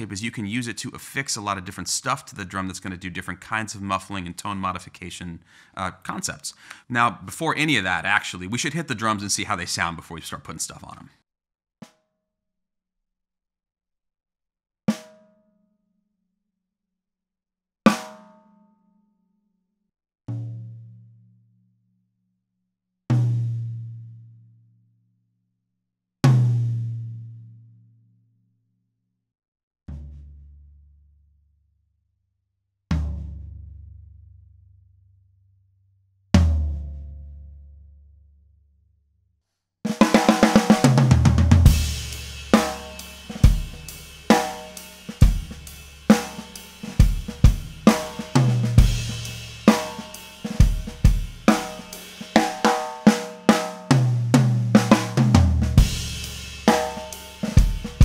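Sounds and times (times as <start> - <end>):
drum struck with stick: 39.9 - 58.0.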